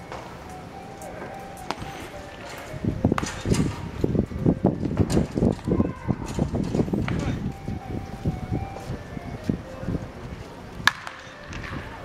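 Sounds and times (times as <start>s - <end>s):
wooden bat cracking against ball: 10.8s - 11.9s.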